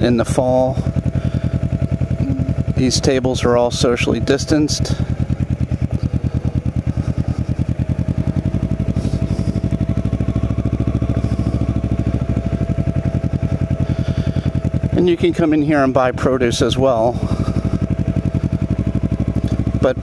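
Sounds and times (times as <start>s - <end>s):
motorcycle engine pulsing: 0.0s - 20.0s.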